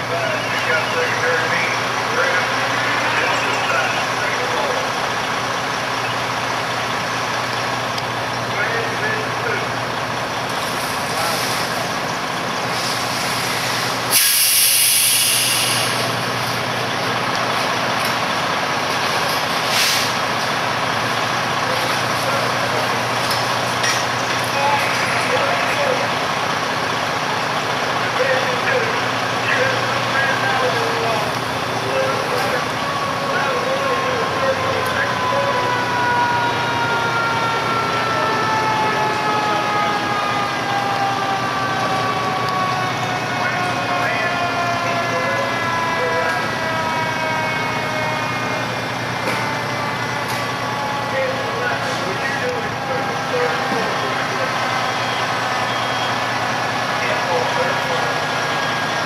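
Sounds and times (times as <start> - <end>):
fire engines running: 0.0 - 59.0
loud hiss: 12.7 - 16.2.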